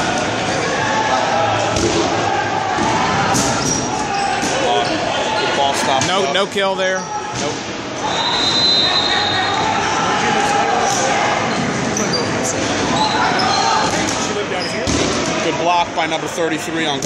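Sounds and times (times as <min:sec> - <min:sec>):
players shouting: 0:00.0 - 0:14.7.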